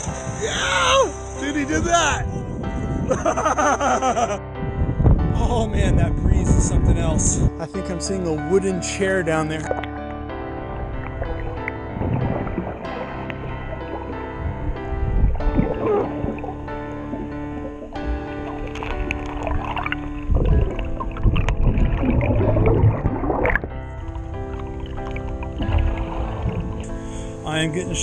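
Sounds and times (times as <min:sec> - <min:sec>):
background music with held notes: 0:00.0 - 0:28.0
underwater gurgling and bubbling: 0:10.5 - 0:27.6.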